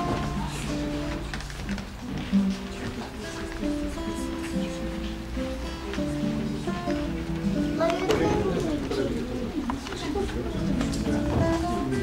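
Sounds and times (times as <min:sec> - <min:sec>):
group of people talking: 0:00.0 - 0:12.0.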